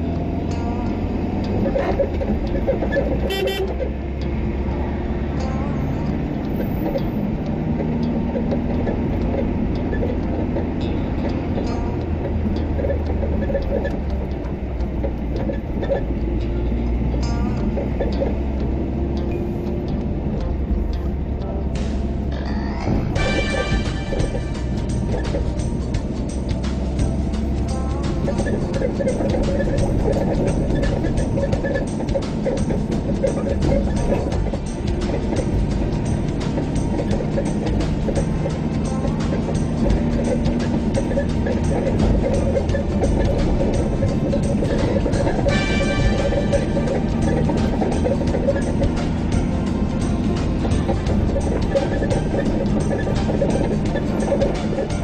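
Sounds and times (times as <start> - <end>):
car engine rumble: 0.0 - 55.0
music with steady beat: 0.0 - 55.0.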